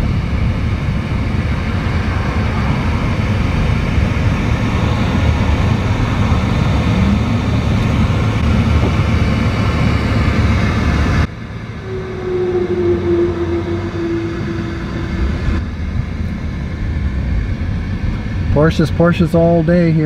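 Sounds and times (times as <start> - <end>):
car engine and tyres rumbling: 0.0 - 20.0
brief rising tone: 11.4 - 16.1.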